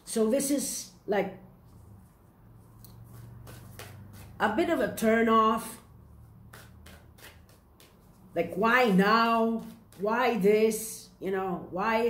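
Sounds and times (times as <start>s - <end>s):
cards being shuffled: 2.9s - 4.5s, 6.4s - 8.4s.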